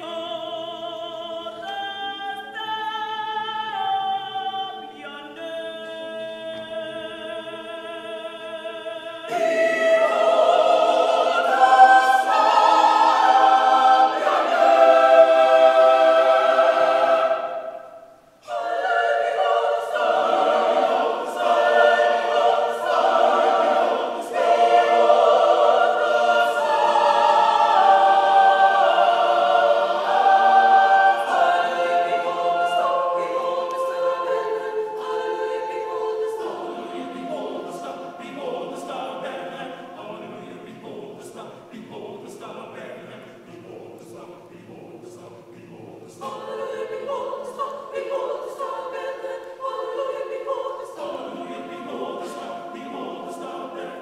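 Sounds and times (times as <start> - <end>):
mixed choir singing: 0.0 - 54.0.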